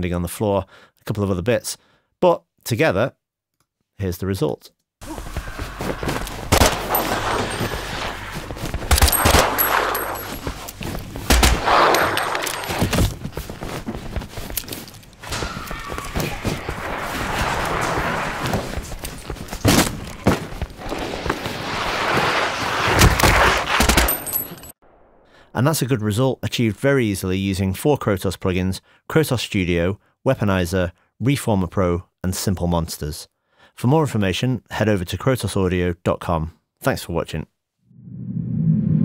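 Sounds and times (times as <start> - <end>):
basement ambience: 5.0 - 20.6
footsteps: 5.0 - 22.2
clothing movement: 5.0 - 24.7
sharp impacts: 6.3 - 13.3
gunfire bursts: 6.5 - 10.2, 11.3 - 12.7.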